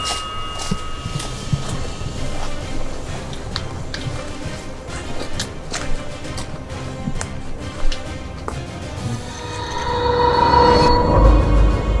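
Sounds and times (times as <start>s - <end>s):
sustained high tone: 0.0s - 4.0s, 9.0s - 12.0s
tense music: 0.0s - 12.0s.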